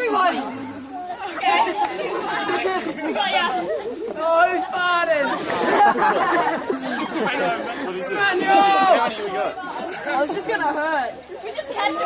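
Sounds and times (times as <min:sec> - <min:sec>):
young people chattering: 0:00.0 - 0:12.0.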